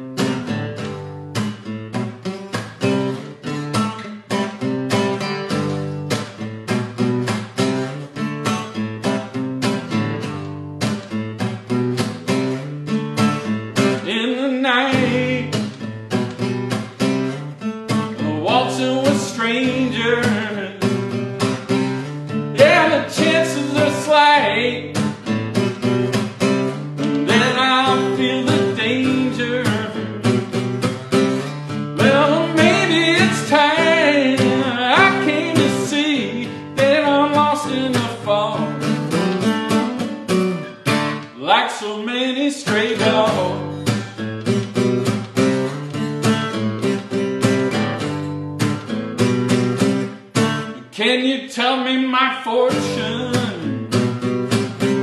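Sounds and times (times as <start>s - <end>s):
guitar strumming: 0.0s - 55.0s
man singing: 13.8s - 15.9s, 18.0s - 21.2s, 22.5s - 25.2s, 27.0s - 30.6s, 31.8s - 40.0s, 41.3s - 44.0s, 50.7s - 54.2s.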